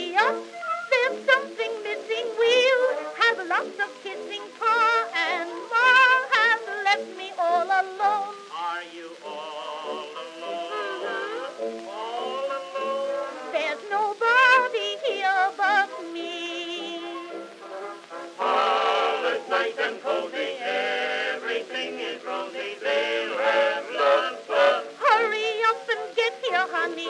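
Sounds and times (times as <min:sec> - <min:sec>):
soprano singing with small orchestra: 0:00.0 - 0:27.0.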